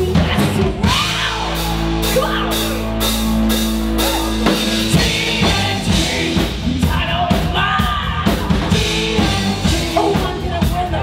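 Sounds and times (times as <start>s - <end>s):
bass guitar: 0.0s - 11.0s
drum kit: 0.0s - 11.0s.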